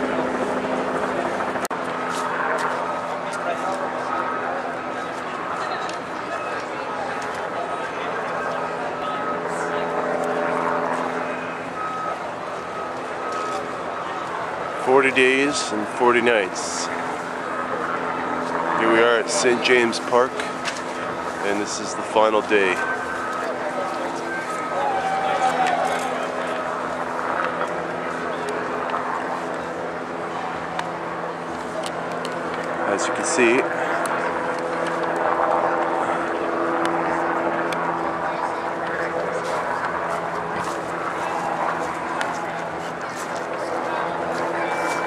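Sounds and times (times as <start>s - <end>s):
distant voices: 0.0s - 45.0s
engine drone: 0.0s - 45.0s
reversing alarm beeps: 11.2s - 15.7s, 22.8s - 25.4s
people talking: 13.2s - 17.0s, 18.8s - 28.8s, 32.8s - 34.3s.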